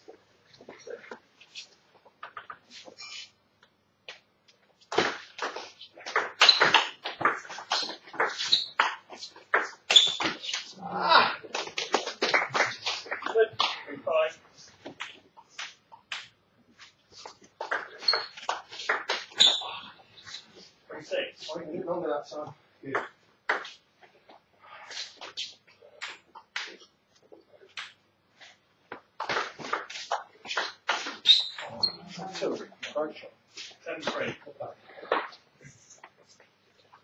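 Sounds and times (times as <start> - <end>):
table tennis ball bouncing: 5.0 - 10.4.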